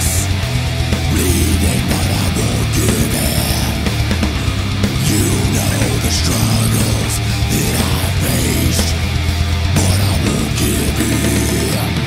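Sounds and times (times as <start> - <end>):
distorted rhythm guitars: 0.0 - 12.0
harsh death metal vocals: 0.0 - 12.0.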